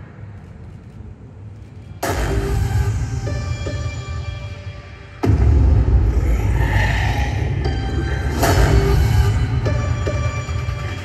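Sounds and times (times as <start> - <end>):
music over loudspeakers: 2.0 - 11.0
low rumble: 5.2 - 10.6.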